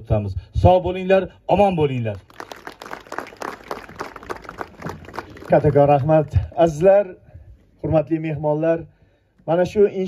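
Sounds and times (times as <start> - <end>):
audience applauding: 2.2 - 6.8.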